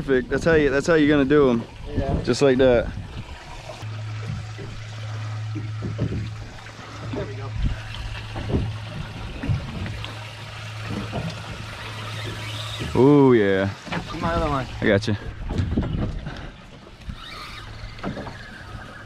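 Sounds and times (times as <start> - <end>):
water sloshing around hull: 0.2 - 19.0.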